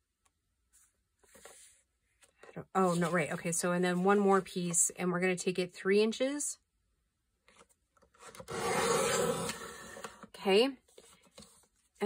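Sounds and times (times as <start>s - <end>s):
paper trimmer cutting folder: 8.2s - 10.2s.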